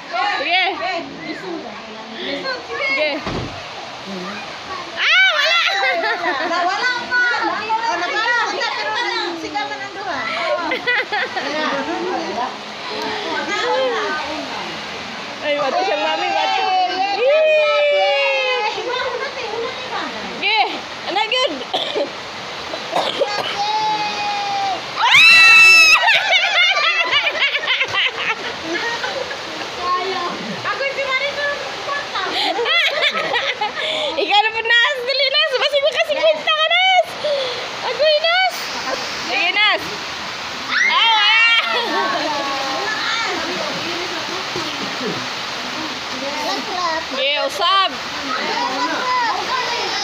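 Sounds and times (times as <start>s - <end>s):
children talking and calling out: 0.0s - 50.0s
steady rushing hiss: 0.0s - 50.0s
child's high-pitched voice: 48.2s - 50.0s.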